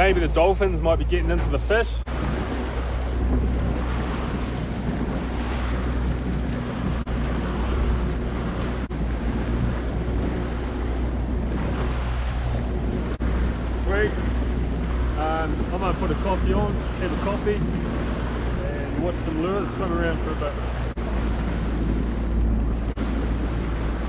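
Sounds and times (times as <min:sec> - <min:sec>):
outboard motor running: 0:00.0 - 0:24.0
water rushing from wake: 0:00.0 - 0:24.0
wind buffeting microphone: 0:00.0 - 0:24.0.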